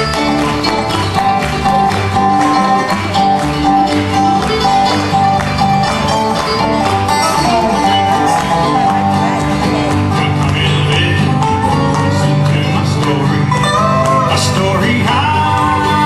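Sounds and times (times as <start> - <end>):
acoustic guitar: 0.0 - 16.0
banjo: 0.0 - 16.0
mandolin: 0.0 - 16.0
upright bass: 0.0 - 16.0.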